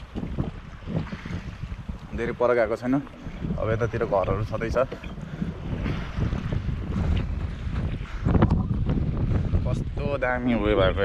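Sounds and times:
faint water wash: 0:00.0 - 0:11.0
wind buffeting microphone: 0:00.0 - 0:11.0.

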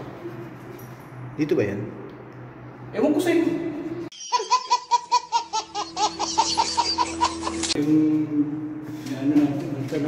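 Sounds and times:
baby laughing: 0:04.1 - 0:07.8.

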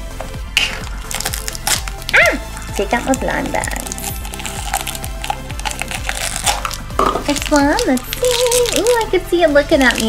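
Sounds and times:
background music: 0:00.0 - 0:10.0
foil bag crinkling: 0:00.9 - 0:02.2, 0:03.0 - 0:09.1
foil bag tearing: 0:00.9 - 0:02.3, 0:03.6 - 0:09.0.

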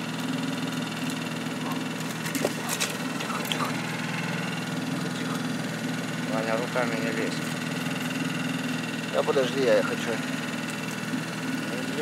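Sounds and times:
outboard motor idling: 0:00.0 - 0:12.0.

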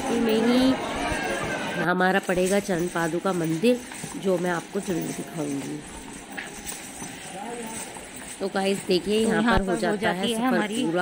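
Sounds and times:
horse hooves clip-clopping on pavement: 0:00.0 - 0:11.0.

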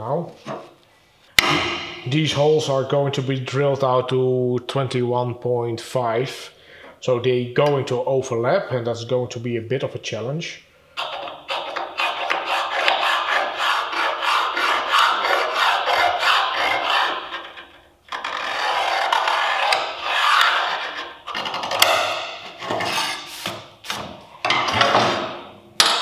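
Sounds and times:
scriber scratching steel plate: 0:11.0 - 0:24.1.

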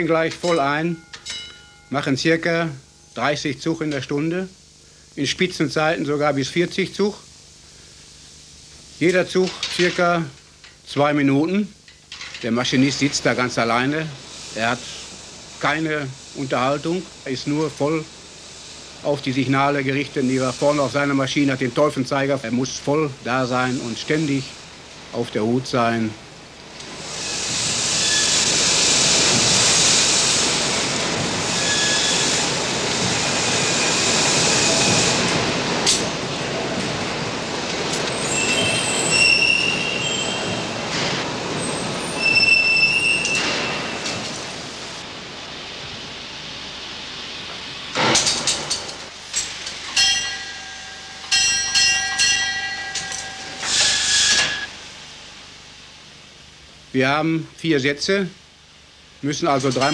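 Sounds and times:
steam winding engine rushing: 0:12.5 - 0:26.2, 0:26.8 - 0:45.0, 0:49.4 - 0:54.7
high squeals: 0:31.5 - 0:32.5, 0:38.1 - 0:40.8, 0:41.6 - 0:44.0
shrill signal tones: 0:31.5 - 0:32.5, 0:38.2 - 0:40.8, 0:42.0 - 0:44.0, 0:50.0 - 0:54.8.

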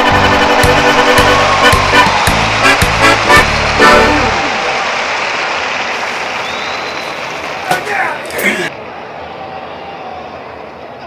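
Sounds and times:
accordion pasodoble: 0:00.0 - 0:04.5.

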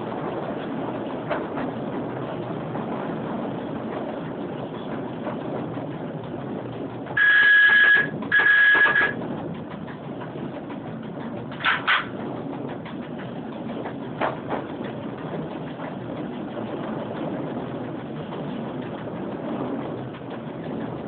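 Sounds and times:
train rumbling along track: 0:00.0 - 0:21.0
high-pitched train horn: 0:07.2 - 0:09.2.

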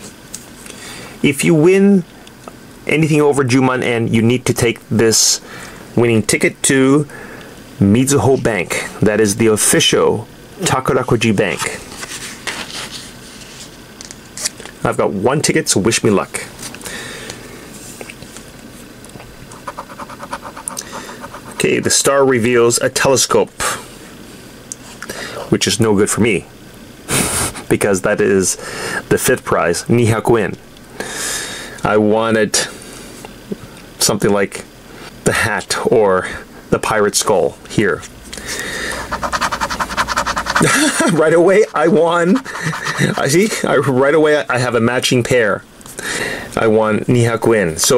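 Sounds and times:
scratching lottery ticket coating: 0:19.4 - 0:22.0, 0:38.5 - 0:43.8.

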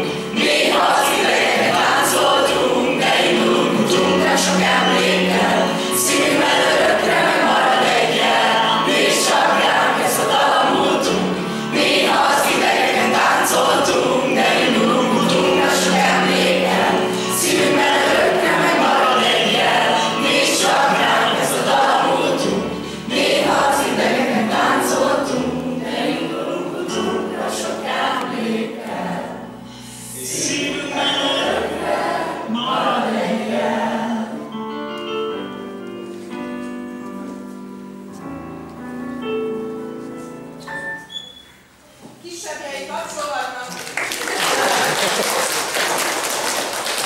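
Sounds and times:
children singing together: 0:00.0 - 0:34.4.

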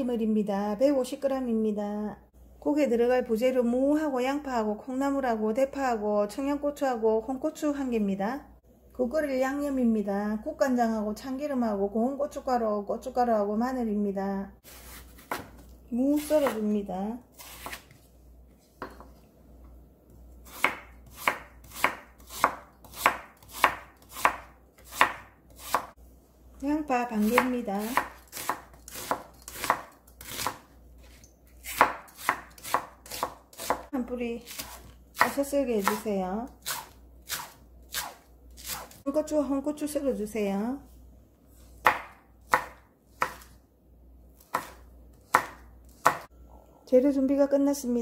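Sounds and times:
knife chopping on wooden board: 0:14.8 - 0:15.6, 0:16.3 - 0:16.6, 0:17.4 - 0:17.9, 0:20.5 - 0:25.9, 0:27.2 - 0:30.7, 0:31.6 - 0:36.0, 0:36.6 - 0:39.0, 0:41.8 - 0:43.6, 0:44.4 - 0:46.3
knife slicing on wooden board: 0:17.4 - 0:18.0.

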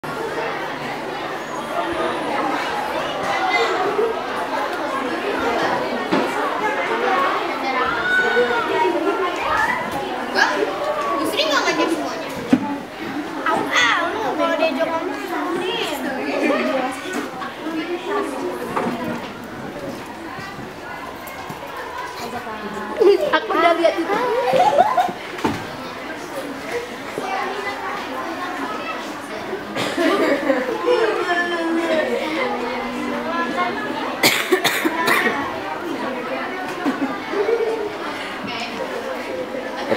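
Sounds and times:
girls chattering: 0:00.0 - 0:39.9.

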